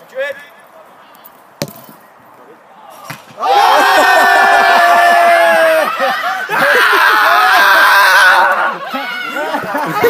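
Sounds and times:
football being kicked: 1.6s - 2.0s.

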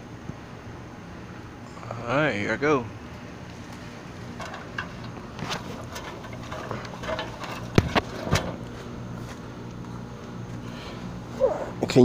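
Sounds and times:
steady low hum: 0.0s - 12.0s
feet climbing metal ladder rungs: 4.3s - 8.6s.

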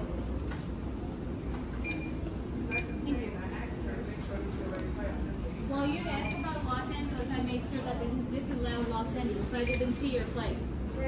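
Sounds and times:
hum of busy terminal: 0.0s - 11.0s
short electronic beeps: 1.8s - 3.0s.

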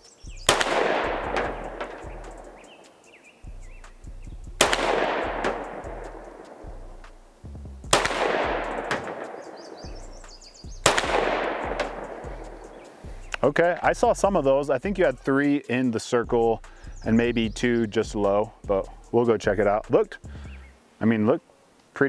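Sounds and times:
pistol shots with echo: 0.4s - 2.6s, 4.6s - 6.7s, 7.9s - 10.0s, 10.8s - 12.9s.

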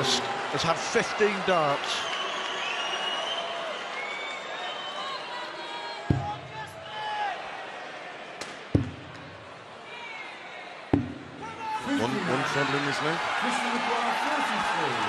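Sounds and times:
arena crowd noise: 0.0s - 15.0s.

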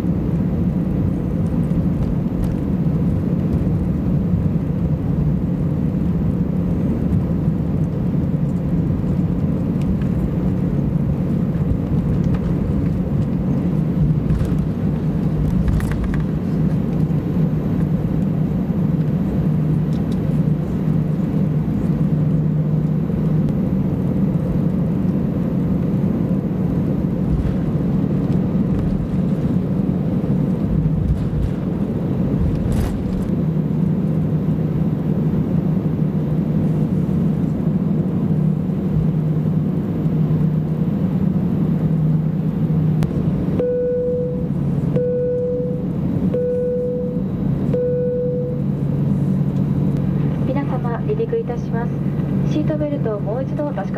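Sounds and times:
jet engine hum and rumble: 0.0s - 53.9s.

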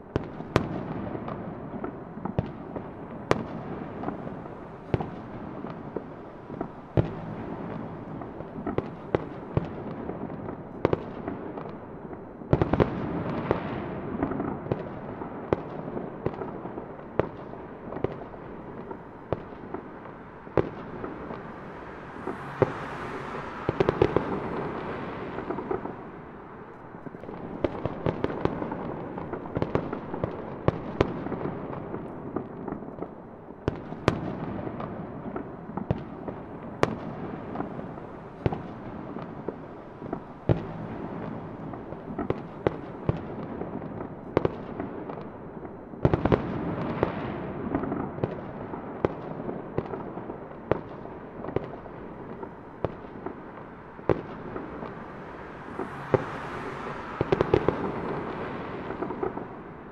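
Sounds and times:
fireworks crackling and popping: 0.0s - 59.9s.

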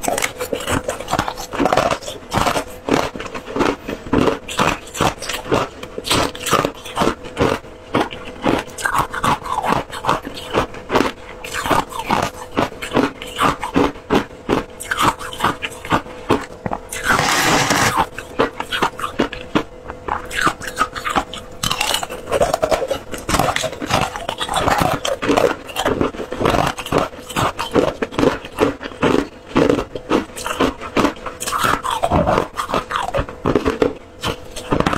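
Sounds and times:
crunching and chewing ice: 0.0s - 34.9s.

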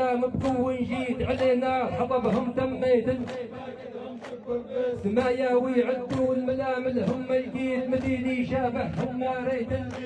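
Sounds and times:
men singing: 0.0s - 10.0s
men chanting a low note: 2.1s - 10.0s.

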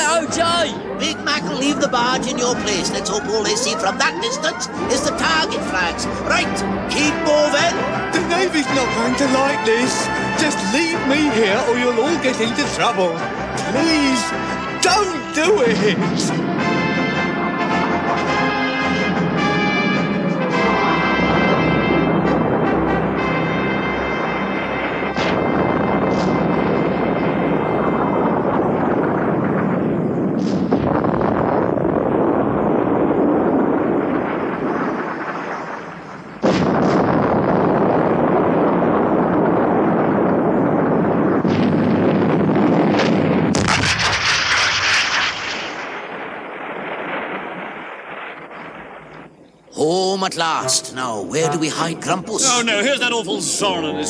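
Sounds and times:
loud blast: 0.0s - 49.4s
dramatic background music: 0.2s - 29.8s
heavy gun booms: 15.7s - 49.4s.

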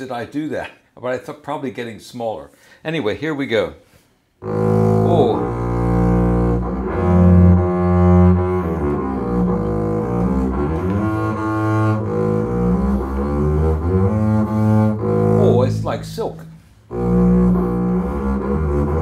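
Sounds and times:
double bass bowed low notes: 4.4s - 19.0s.

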